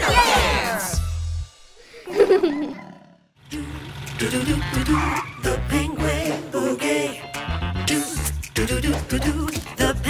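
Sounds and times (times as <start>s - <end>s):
bouncy children's music: 0.0s - 1.6s, 3.5s - 10.0s.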